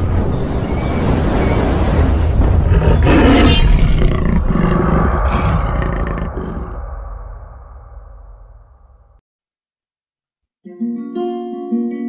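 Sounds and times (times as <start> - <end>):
deep rumbling animal roar: 2.5 - 8.6.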